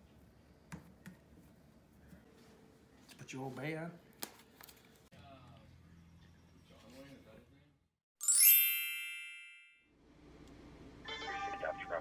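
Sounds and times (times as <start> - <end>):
bright chime: 8.2 - 9.9.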